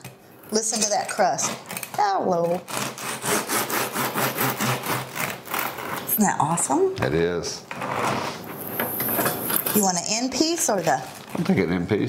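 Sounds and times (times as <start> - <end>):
bread knife sawing through crust: 2.5 - 6.1.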